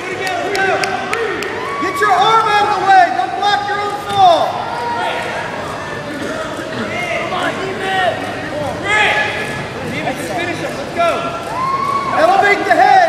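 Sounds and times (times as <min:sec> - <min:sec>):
people shouting in a gym: 0:00.0 - 0:13.0.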